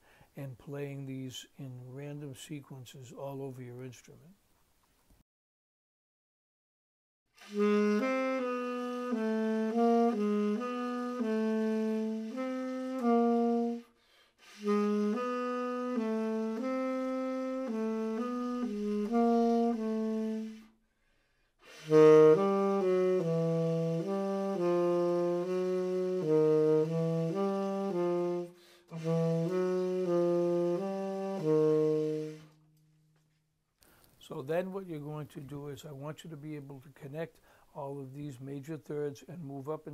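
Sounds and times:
tenor saxophone solo: 7.4s - 20.8s, 21.6s - 32.9s.

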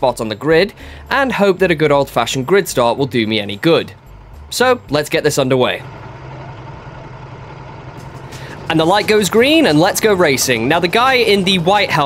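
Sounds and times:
kart engines idling: 0.4s - 12.0s.

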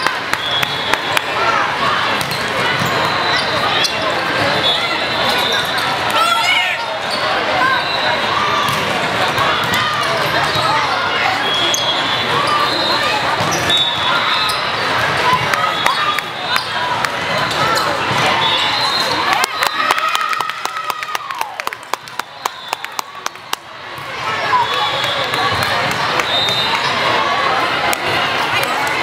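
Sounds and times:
crowd chatter echoing: 0.0s - 29.0s
volleyballs being hit and bouncing: 2.1s - 3.1s, 8.6s - 10.6s, 14.9s - 18.4s
sneaker squeaks on court floor: 2.2s - 6.0s, 9.5s - 19.3s.

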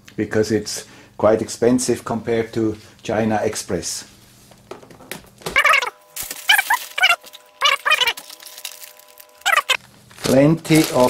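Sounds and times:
packing tape ripping off cardboard: 5.6s - 11.0s.

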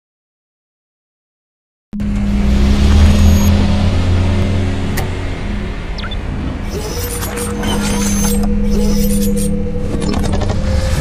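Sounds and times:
loud rumbling swell: 2.0s - 11.0s.

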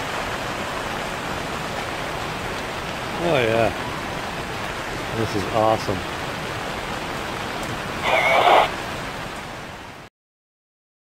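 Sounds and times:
steady rain hiss: 0.0s - 10.1s
wavering cry-like sound: 8.0s - 8.7s.

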